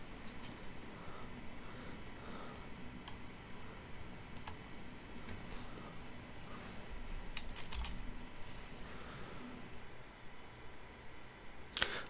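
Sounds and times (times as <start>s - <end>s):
low room hum: 0.0s - 12.0s
keyboard keystrokes: 7.4s - 8.0s.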